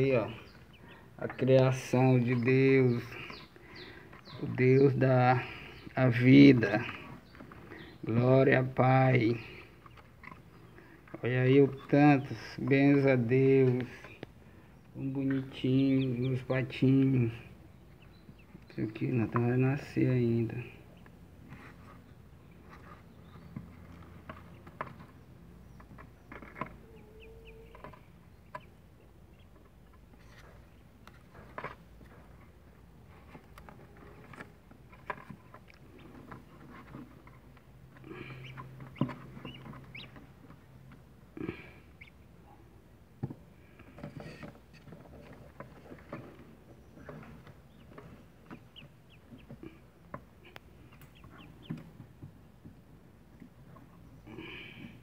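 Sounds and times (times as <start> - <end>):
ducklings peeping: 0.0 - 42.9, 43.6 - 52.6.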